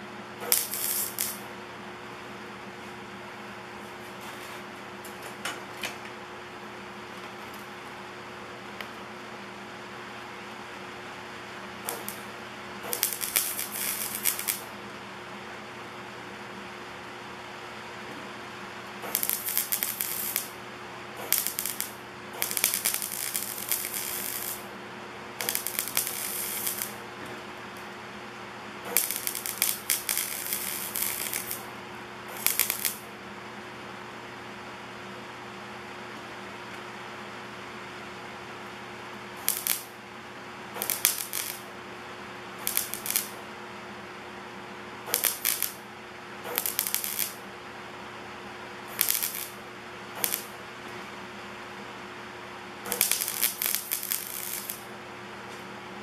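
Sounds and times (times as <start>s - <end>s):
steady low hum: 0.0s - 56.0s
welder arc crackling: 0.4s - 1.5s, 11.8s - 14.7s, 18.9s - 20.6s, 21.2s - 24.7s, 25.4s - 27.0s, 28.8s - 33.1s, 39.4s - 40.0s, 40.7s - 41.7s, 42.5s - 43.4s, 45.1s - 47.5s, 48.8s - 50.6s, 52.8s - 54.9s.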